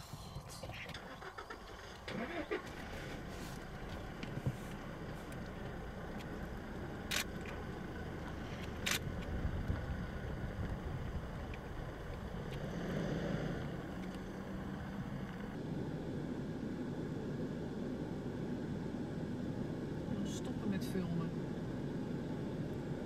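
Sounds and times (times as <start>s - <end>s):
vehicle engine humming: 0.0s - 23.0s.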